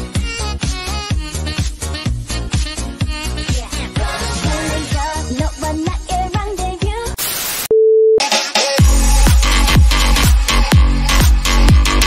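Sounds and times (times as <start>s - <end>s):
pop dance music: 0.0s - 7.6s, 8.2s - 12.0s
tv static hiss: 7.2s - 7.7s
test-card beep: 7.7s - 8.2s.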